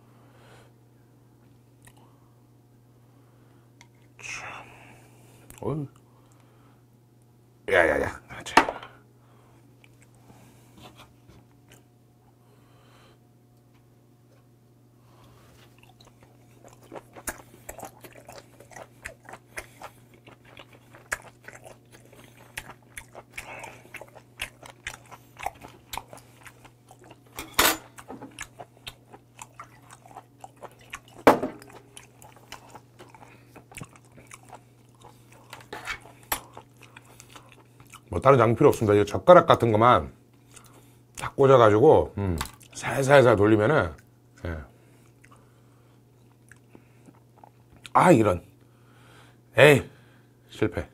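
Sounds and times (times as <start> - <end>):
faint low hum: 0.0 - 50.9
wet chewing: 15.6 - 38.9, 40.4 - 41.4, 42.4 - 42.8, 43.9 - 45.5, 46.1 - 48.0.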